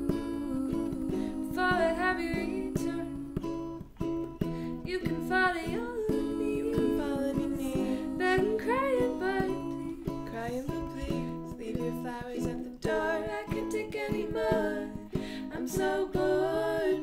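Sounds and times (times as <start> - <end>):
ukulele and guitar strumming: 0.0 - 17.0
women singing: 0.0 - 17.0.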